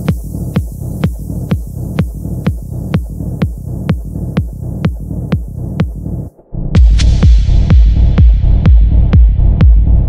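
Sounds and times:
electronic dance music: 0.0 - 9.9
kick drum: 0.0 - 10.0
low bass: 0.0 - 10.0.

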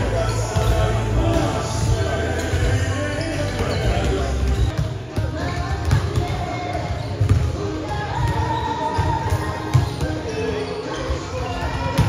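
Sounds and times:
basketballs bouncing on hardwood: 3.7 - 7.6.

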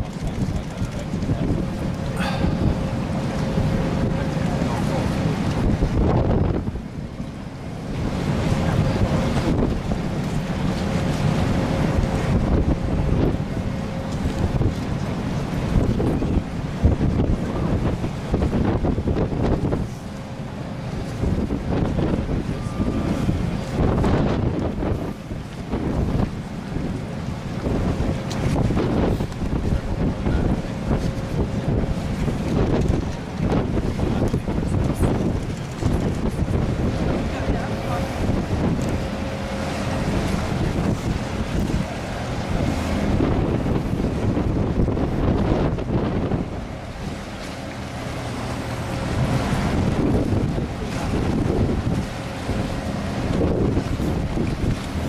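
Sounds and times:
wind blowing on microphone: 0.0 - 55.0.

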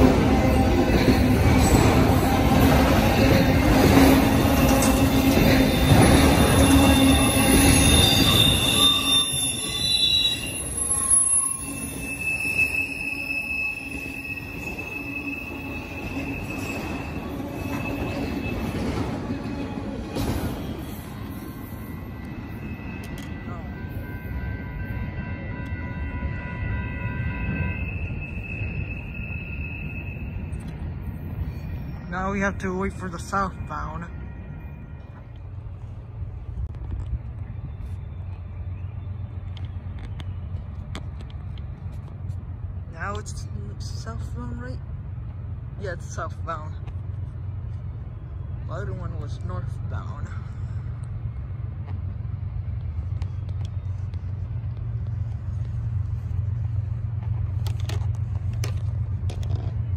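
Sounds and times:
train wheels rumbling on rail: 0.0 - 59.9
high-pitched wheel squeals: 0.4 - 32.1.

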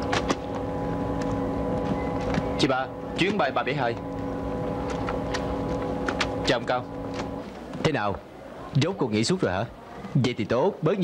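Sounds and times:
droning hall hum: 0.0 - 10.8.

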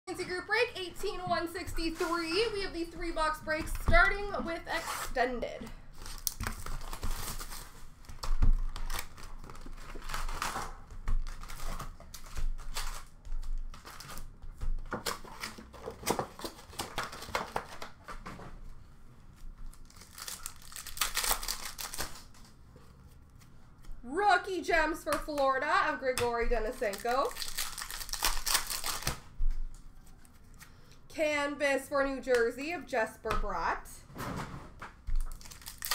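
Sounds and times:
wrappers ripping and crinkling: 5.9 - 14.3, 19.7 - 22.6, 26.7 - 29.2, 35.2 - 35.9
cards and packaging rustling: 5.9 - 18.3, 19.6 - 24.0, 24.8 - 31.1, 35.1 - 35.9.

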